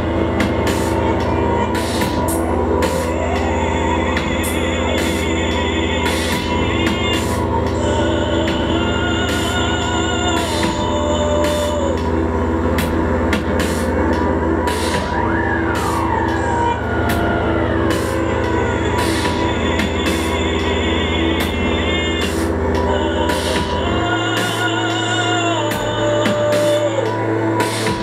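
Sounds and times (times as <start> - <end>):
gliding falling whines: 0.0 - 28.0
low electronic drone: 0.0 - 28.0
pulsing tone: 0.0 - 28.0.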